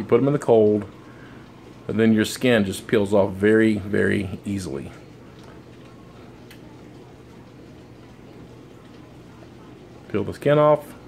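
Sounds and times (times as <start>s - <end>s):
kitchen background hum: 0.0s - 11.0s
faint clicks: 5.3s - 6.8s.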